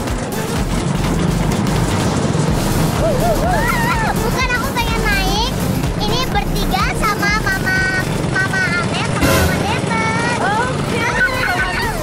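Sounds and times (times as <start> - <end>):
ride rumbling: 0.0 - 12.0
girl shrieking and laughing: 3.0 - 4.3.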